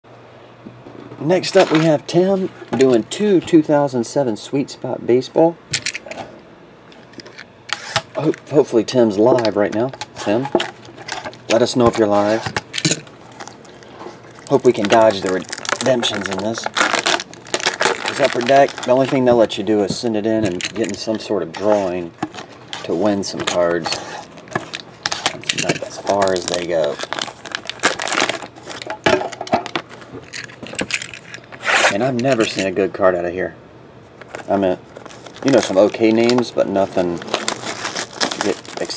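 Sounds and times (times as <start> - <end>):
plastic wrap crinkle: 10.2 - 19.6, 20.4 - 32.6, 34.3 - 38.9
handling clicks and knocks: 17.6 - 27.2, 28.2 - 32.7.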